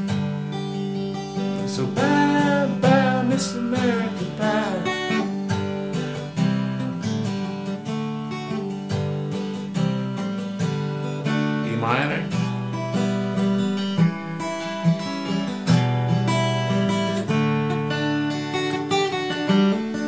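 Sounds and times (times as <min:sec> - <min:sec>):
acoustic guitar strumming: 0:00.0 - 0:20.0
man singing: 0:01.6 - 0:05.3.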